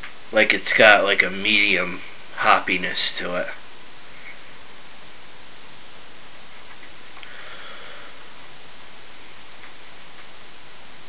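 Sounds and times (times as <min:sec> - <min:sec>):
microphone hiss: 0:00.0 - 0:11.0
faint sniff: 0:07.2 - 0:08.4.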